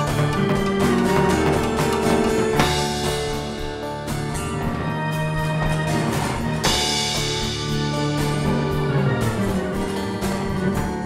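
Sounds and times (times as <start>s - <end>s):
percussive beat: 0.0s - 11.0s
slide guitar blues instrumental: 0.0s - 11.0s.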